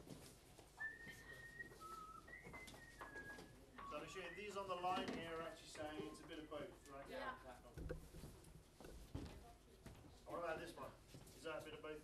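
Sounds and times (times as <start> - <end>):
person whistling: 0.8 - 4.5.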